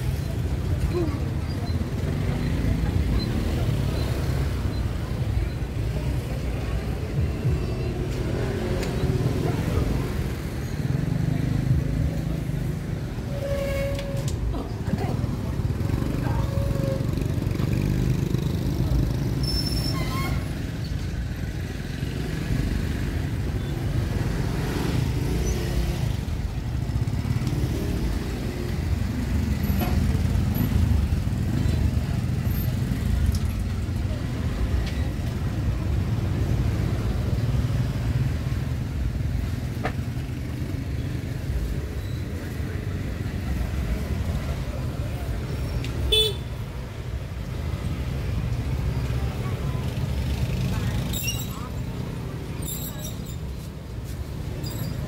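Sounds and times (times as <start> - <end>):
motorbike and scooter traffic: 0.0 - 55.0.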